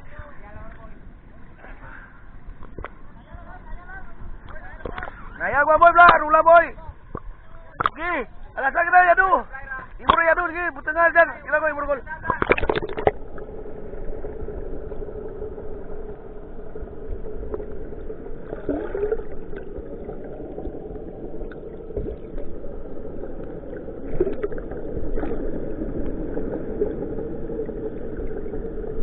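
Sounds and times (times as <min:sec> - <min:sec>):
boat engine drone underwater: 0:00.0 - 0:29.0
bubbling swirling water: 0:12.4 - 0:29.0.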